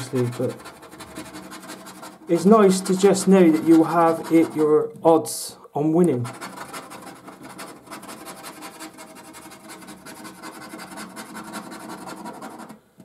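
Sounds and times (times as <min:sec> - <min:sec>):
scratchcard being scratched: 0:00.0 - 0:04.8, 0:06.2 - 0:12.8.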